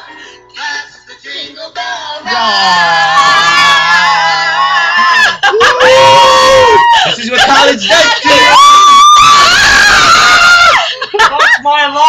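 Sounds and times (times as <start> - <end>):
person screaming: 2.3 - 10.8.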